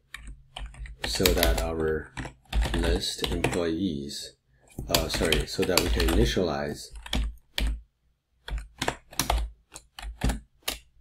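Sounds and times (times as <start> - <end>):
keyboard typing: 0.0 - 3.8, 4.8 - 7.8, 8.4 - 11.0.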